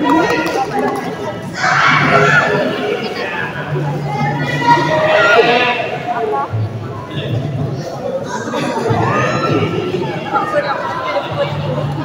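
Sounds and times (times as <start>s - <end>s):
murmur of voices in hall: 0.0s - 12.0s.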